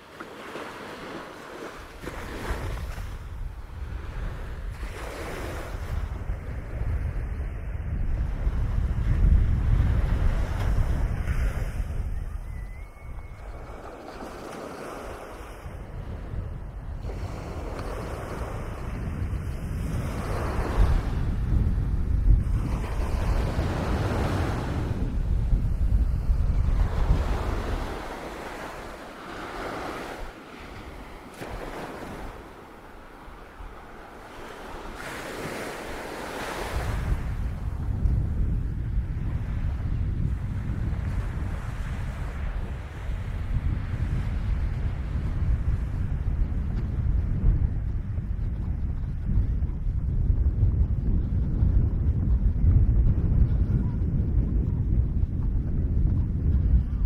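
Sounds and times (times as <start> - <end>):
surf breaking on a beach: 0.0 - 12.5, 13.3 - 57.0
wind buffeting microphone: 0.4 - 57.0.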